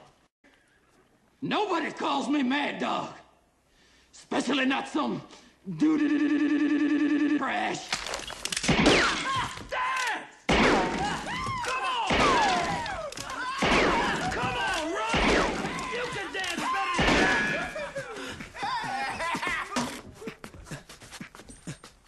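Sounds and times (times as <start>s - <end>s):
revolver shots indoors: 10.5s - 11.3s, 15.2s - 15.8s
men hollering and laughing: 11.0s - 21.0s.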